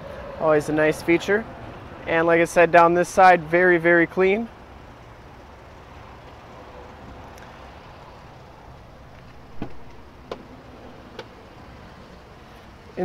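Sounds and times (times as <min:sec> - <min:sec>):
outdoor background noise: 0:00.0 - 0:13.0.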